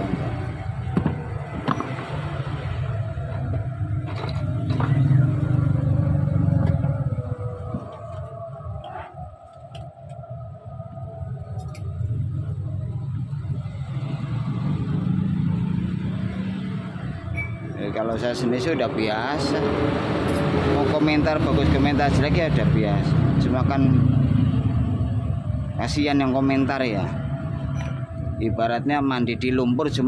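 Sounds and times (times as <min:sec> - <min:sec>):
low rumble of passing traffic: 0:00.0 - 0:30.0.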